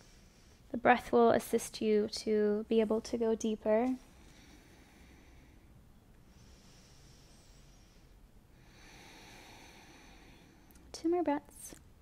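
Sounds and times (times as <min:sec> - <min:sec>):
person breathing deeply: 0:04.0 - 0:10.8.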